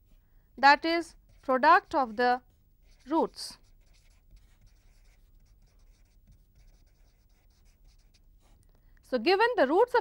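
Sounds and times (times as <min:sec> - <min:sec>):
marker writing on paper: 0:01.0 - 0:08.6.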